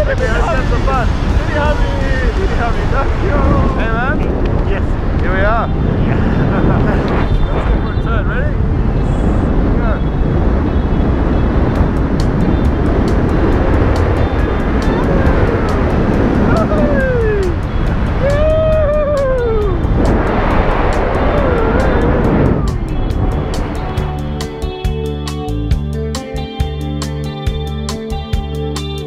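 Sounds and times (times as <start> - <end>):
wind rushing over microphone: 0.0 - 26.0
background music with beat: 11.8 - 29.0
person whooping: 15.0 - 17.6, 18.2 - 19.8, 21.1 - 22.8.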